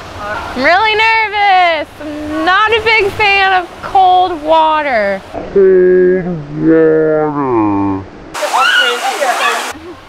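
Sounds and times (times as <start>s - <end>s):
rushing water over rock: 8.3s - 10.0s
high-pitched voices shrieking: 8.4s - 9.8s.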